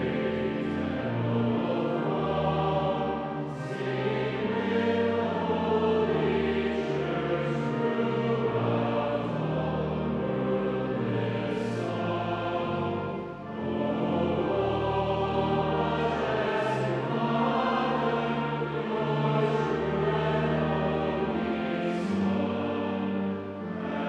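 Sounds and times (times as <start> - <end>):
choir singing: 0.0 - 24.0
long low accompanying notes: 0.0 - 24.0.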